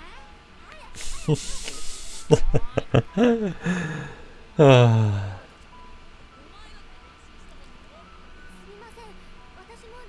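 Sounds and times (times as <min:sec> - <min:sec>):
faint background music: 0:00.0 - 0:10.0
breathy hiss: 0:01.0 - 0:02.4, 0:03.2 - 0:05.5.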